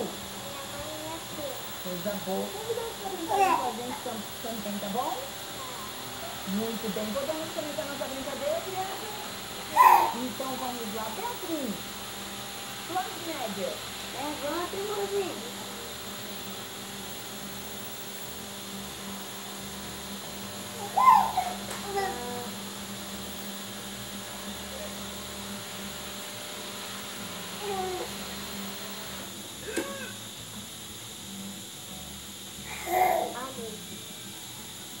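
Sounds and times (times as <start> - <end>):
steady background hum: 0.0 - 35.0
baby cooing and squealing: 9.7 - 10.2, 20.8 - 22.1.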